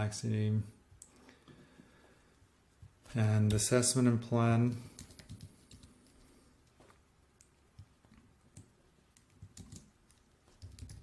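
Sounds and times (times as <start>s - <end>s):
computer keyboard keystrokes: 4.9s - 5.9s, 8.5s - 11.0s.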